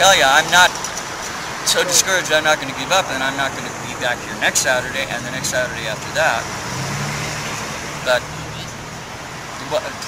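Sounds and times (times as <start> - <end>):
road traffic engine hum: 0.0 - 10.0.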